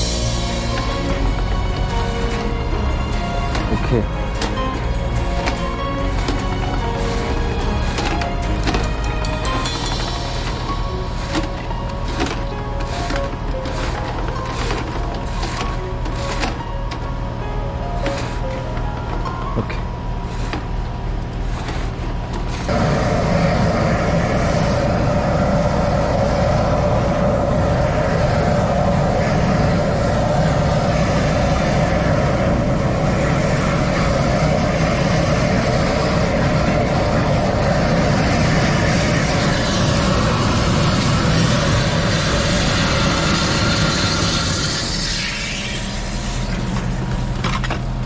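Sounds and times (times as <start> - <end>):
drain jetter running: 0.0 - 48.0
water jetting through drain: 27.6 - 47.8.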